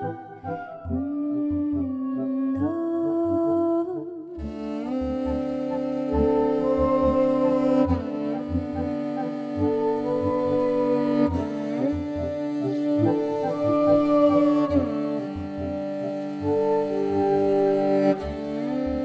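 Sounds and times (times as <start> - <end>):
bowed fiddle drone and melody: 0.0 - 2.9, 4.4 - 19.0.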